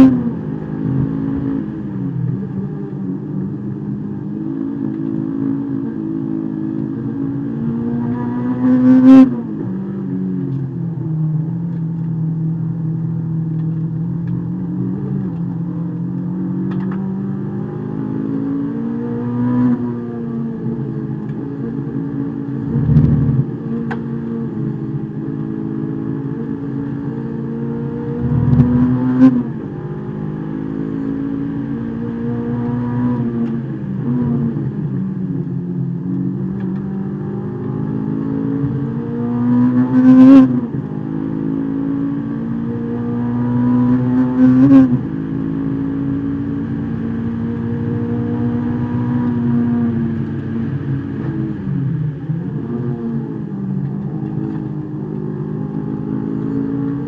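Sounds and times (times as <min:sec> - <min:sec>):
race car engine revving: 0:13.7 - 0:35.0, 0:36.2 - 0:57.0.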